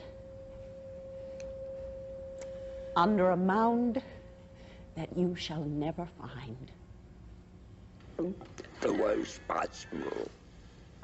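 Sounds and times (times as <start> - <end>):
steady pure tone: 0.0 - 11.0.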